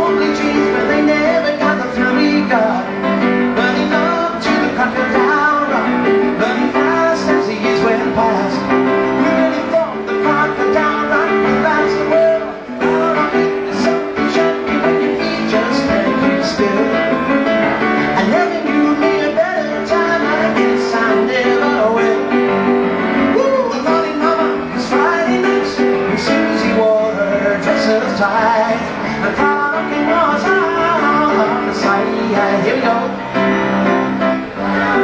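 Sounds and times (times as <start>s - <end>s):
grand piano playing: 0.0s - 35.0s
man singing: 0.0s - 35.0s.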